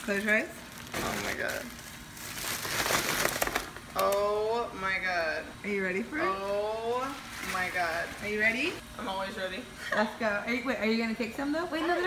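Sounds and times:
plastic bag crinkling: 0.1s - 4.2s.

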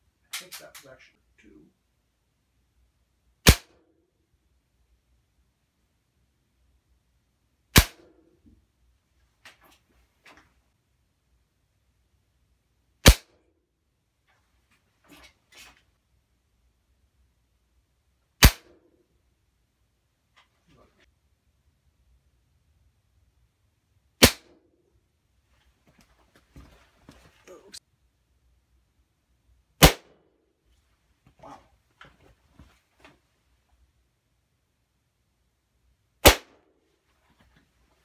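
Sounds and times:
air rifle shot crack: 3.4s - 3.8s, 7.7s - 8.2s, 18.4s - 18.8s, 29.8s - 30.2s, 36.2s - 36.6s.

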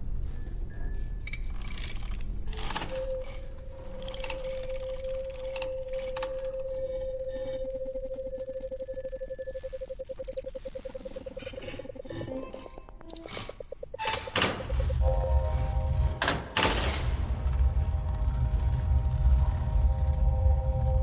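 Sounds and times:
lower pulsing tone: 4.0s - 16.2s
sustained warbling tone: 4.4s - 16.2s.

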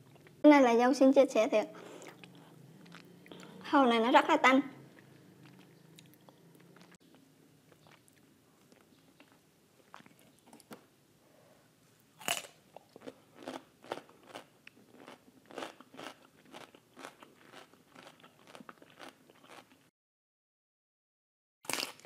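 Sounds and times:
crunchy chewing: 1.9s - 3.6s, 4.9s - 10.8s, 12.2s - 19.8s
biting crisp cucumber: 21.7s - 22.0s.

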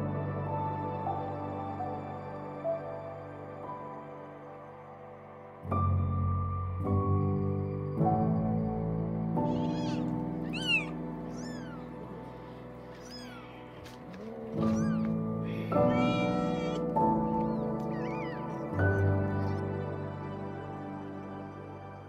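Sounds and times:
soft slow background music: 0.0s - 22.0s
kittens mewing: 9.4s - 19.9s.

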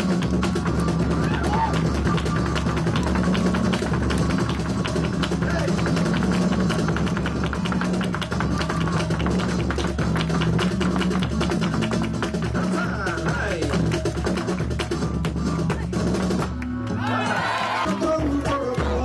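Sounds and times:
heeled shoes tapping on stage: 0.0s - 16.7s
flamenco fusion music: 0.0s - 19.0s.

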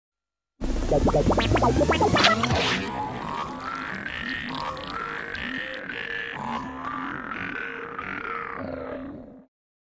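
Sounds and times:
buzzy pitched jingle notes: 0.7s - 4.2s.

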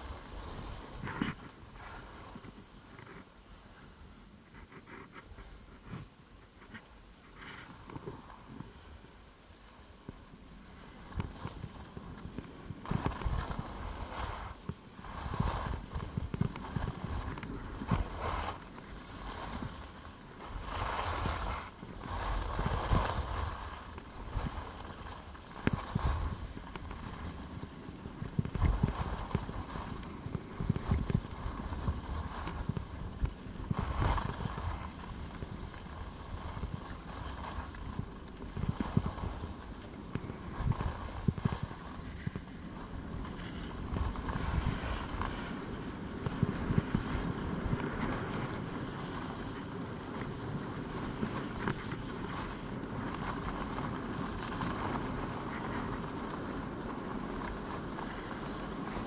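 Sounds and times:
skis scraping over snow: 0.0s - 59.0s
wind rushing on microphone: 11.0s - 59.0s.

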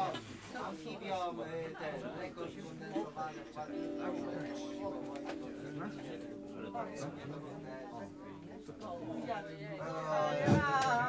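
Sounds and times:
people talking: 0.0s - 11.0s
sustained musical chord: 3.7s - 10.4s.

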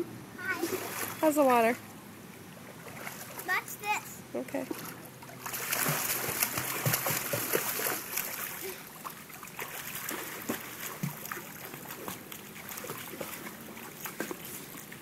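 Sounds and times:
child splashing water: 0.4s - 1.7s, 4.6s - 15.0s.

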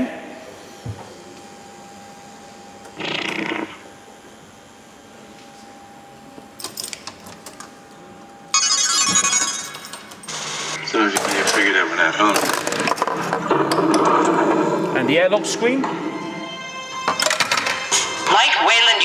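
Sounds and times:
pinball machine clicks: 17.1s - 17.8s.

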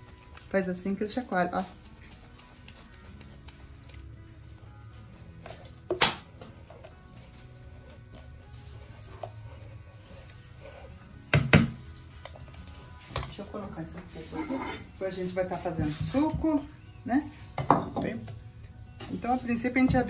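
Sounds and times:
quiet background music: 0.0s - 20.0s.

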